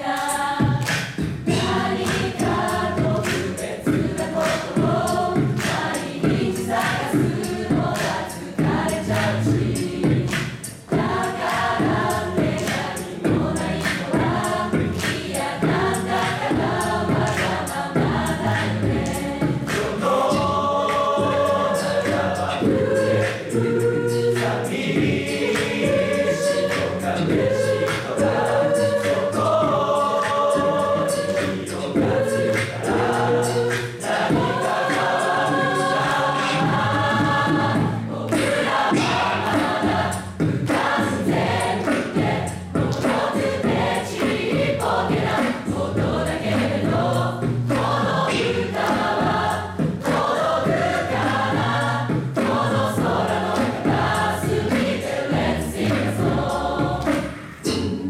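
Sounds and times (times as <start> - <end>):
choir singing a cappella: 0.0 - 58.0.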